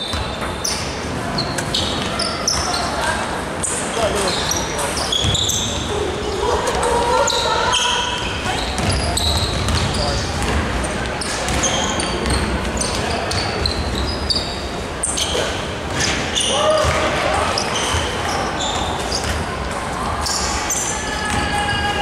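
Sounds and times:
sneaker squeaks: 0:00.0 - 0:21.8.

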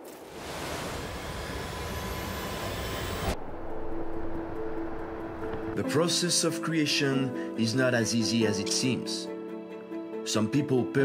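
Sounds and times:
whoosh with rising whistle: 0:00.2 - 0:05.8
low held tones: 0:01.1 - 0:05.8.

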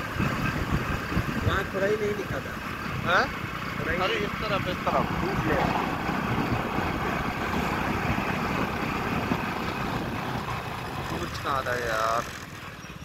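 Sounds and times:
wind buffeting microphone: 0:00.0 - 0:11.8
motorcycle road noise: 0:00.0 - 0:13.0.

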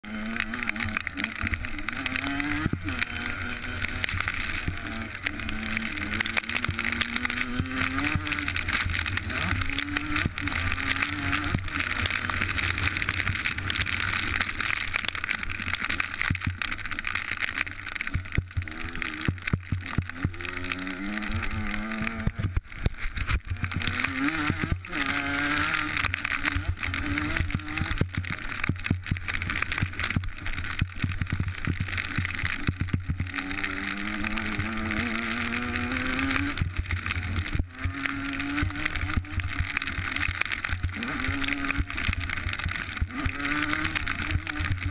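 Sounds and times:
dirt bike engine revving: 0:00.0 - 0:16.3, 0:18.4 - 0:22.6, 0:23.2 - 0:44.9
knocks and rattles of bike: 0:00.0 - 0:44.9.

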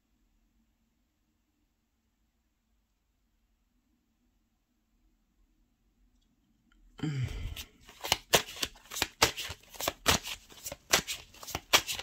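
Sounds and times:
cards being shuffled: 0:07.3 - 0:12.0.

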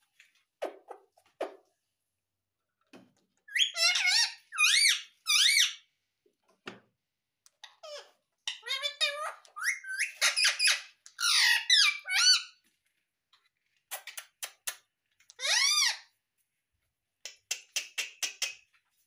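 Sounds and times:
parakeet squeaky calls: 0:03.5 - 0:05.8, 0:07.7 - 0:12.6, 0:15.4 - 0:16.1.

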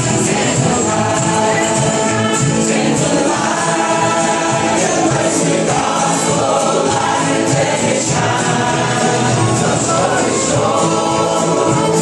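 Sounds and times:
acoustic guitars: 0:00.0 - 0:12.0
group singing: 0:00.0 - 0:12.0
upright bass: 0:00.0 - 0:12.0.

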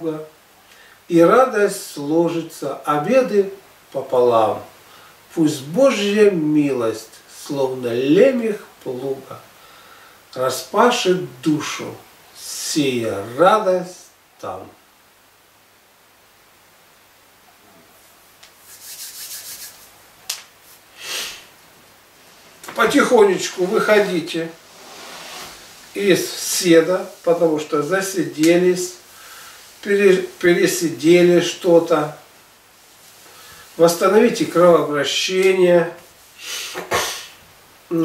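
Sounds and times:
hands rubbing briskly: 0:18.4 - 0:20.0.

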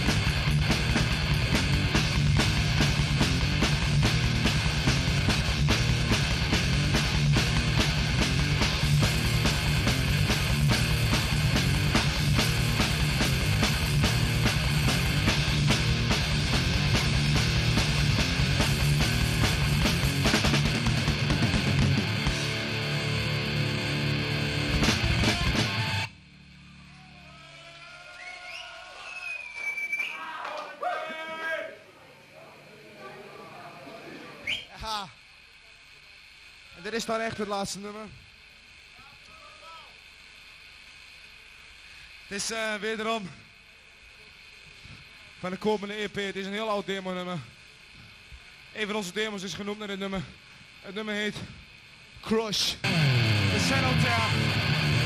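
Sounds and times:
death metal band playing live: 0:00.0 - 0:26.1, 0:52.8 - 0:55.0
audience whistles and shouts: 0:26.9 - 0:30.7, 0:34.4 - 0:34.8.

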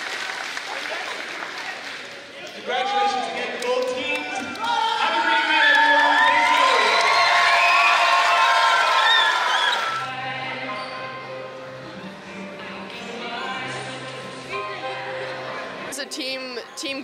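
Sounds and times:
girls screaming and cheering: 0:04.6 - 0:10.1
music: 0:09.2 - 0:17.0.

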